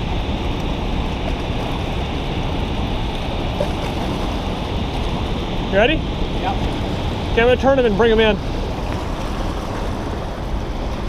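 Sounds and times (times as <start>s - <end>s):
turbulent white water rushing: 0.0s - 11.0s.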